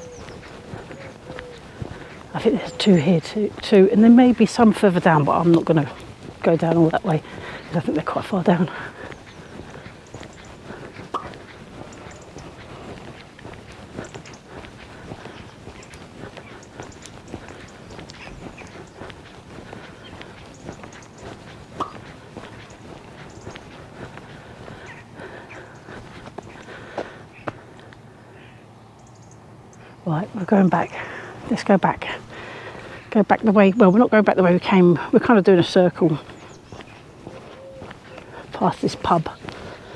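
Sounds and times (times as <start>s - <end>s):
footsteps on tarmac: 0.0s - 28.2s, 29.0s - 39.9s
outdoor background noise: 0.0s - 39.9s.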